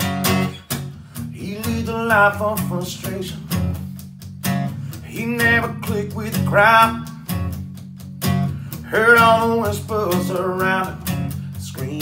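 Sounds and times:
acoustic guitar chords strummed: 0:00.0 - 0:12.0.

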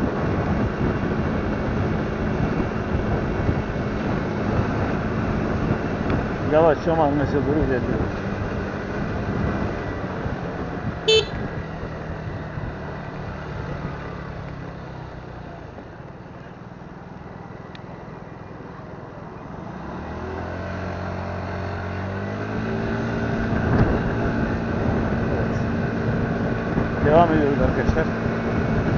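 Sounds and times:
motor scooter engine: 0:00.0 - 0:28.9
street traffic: 0:00.0 - 0:28.9
short high beep: 0:11.1 - 0:11.4.

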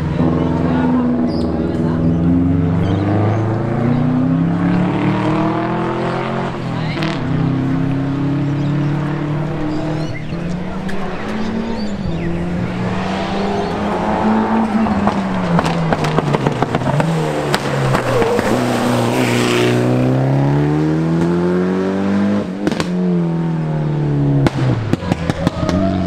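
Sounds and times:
rally car engine revving: 0:00.0 - 0:26.0.

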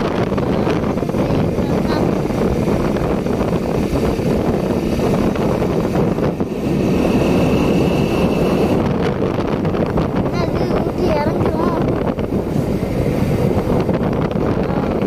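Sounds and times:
motorcycle engine rumble: 0:00.0 - 0:15.0
wind rushing over microphone: 0:00.0 - 0:15.0.

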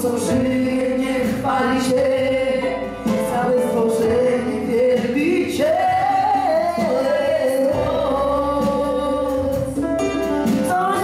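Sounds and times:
worship band singing and playing: 0:00.0 - 0:11.0.

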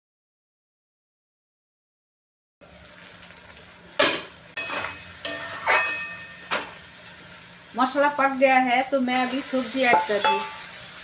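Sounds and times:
masala sizzling in a pan: 0:02.6 - 0:11.0
wooden spatula scraping pan: 0:09.0 - 0:10.8.

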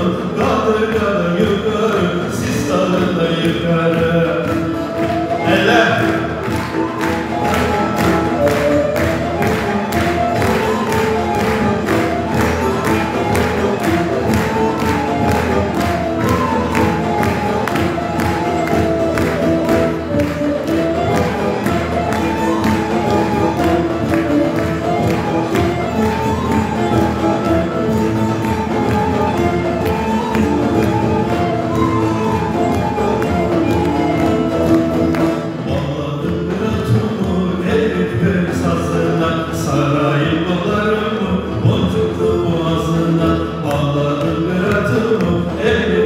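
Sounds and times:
folk string ensemble: 0:00.0 - 0:46.0
percussion beat: 0:00.0 - 0:46.0.

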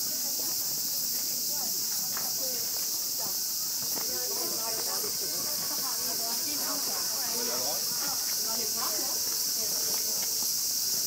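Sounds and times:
people chatting: 0:00.0 - 0:10.5.

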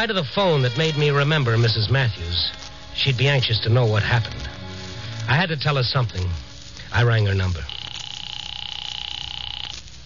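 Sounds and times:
telephone ringing: 0:07.6 - 0:09.8.

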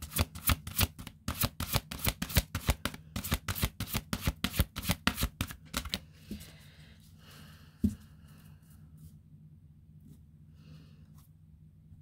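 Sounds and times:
cards shuffled by hand: 0:00.0 - 0:06.0.

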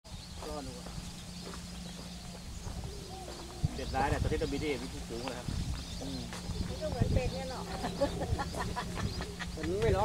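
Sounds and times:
faint high bird calls: 0:00.1 - 0:10.0
wind rumble on microphone: 0:00.1 - 0:10.0.

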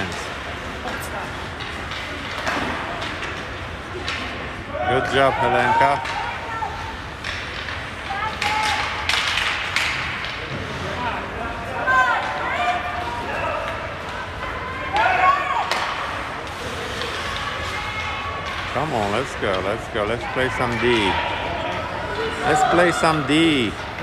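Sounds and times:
hall background noise: 0:00.0 - 0:24.0
hockey sticks and puck knocking: 0:00.1 - 0:04.5, 0:07.1 - 0:10.8, 0:13.6 - 0:17.7.

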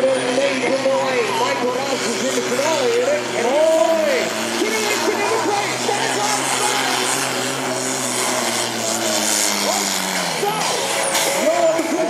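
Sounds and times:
tractor engine running under load: 0:00.0 - 0:12.0.

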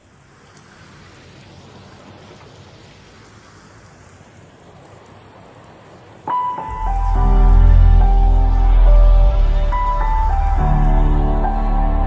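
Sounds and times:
rain falling: 0:00.0 - 0:12.0
piano notes: 0:06.3 - 0:12.0
deep bass note: 0:06.7 - 0:12.0.

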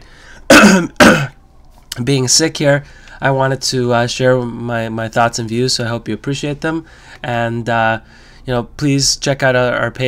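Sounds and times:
man coughing: 0:00.5 - 0:01.4.

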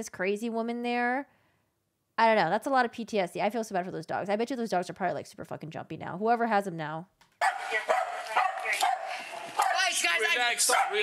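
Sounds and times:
small dogs barking: 0:07.4 - 0:11.0
people shouting: 0:07.7 - 0:11.0.

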